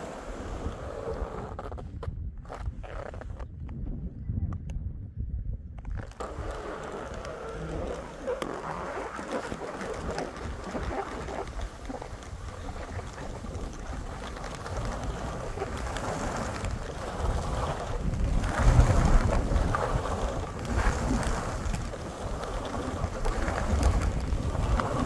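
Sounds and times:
skis hissing through snow: 0:00.0 - 0:01.4, 0:06.2 - 0:25.0
wind buffeting microphone: 0:00.0 - 0:25.0.

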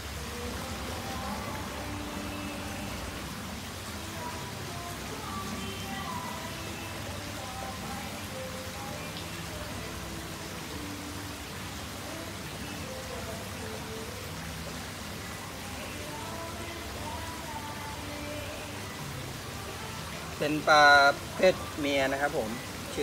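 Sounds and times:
falling water hiss: 0:00.0 - 0:23.0.

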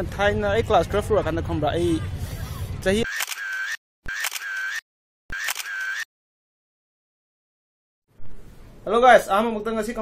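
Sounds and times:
camera motor whir: 0:03.1 - 0:06.0
camera shutter click: 0:03.1 - 0:06.1.

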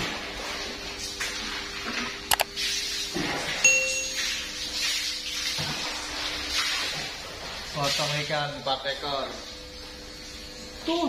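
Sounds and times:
short bright ding: 0:03.6 - 0:04.4.

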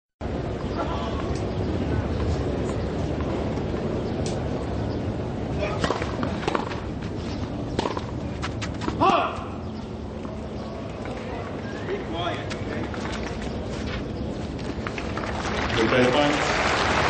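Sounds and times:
tennis ball bouncing and struck: 0:05.7 - 0:06.9, 0:07.7 - 0:09.4.

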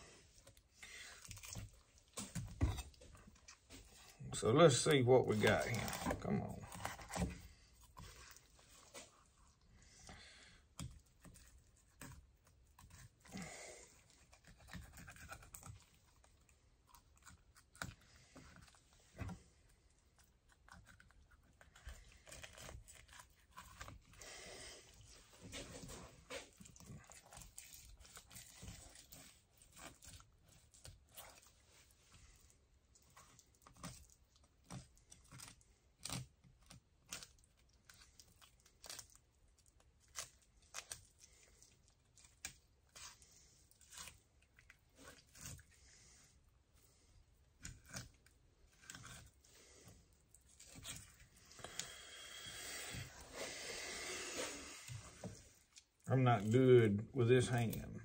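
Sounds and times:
knife cutting fish: 0:10.8 - 0:16.3.

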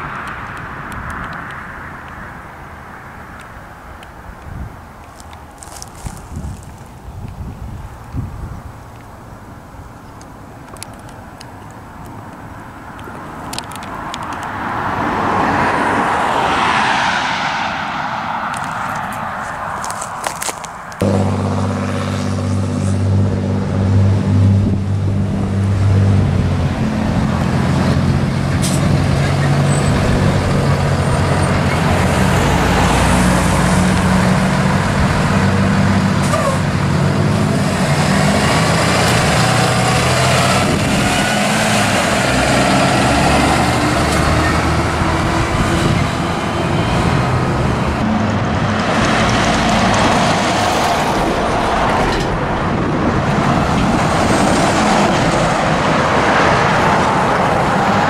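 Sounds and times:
road traffic: 0:00.0 - 0:58.0
bus engine passing by: 0:05.5 - 0:58.0.

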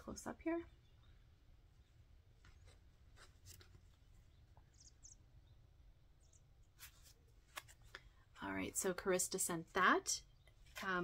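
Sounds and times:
faint rustles of yarn and paper: 0:01.9 - 0:04.6.

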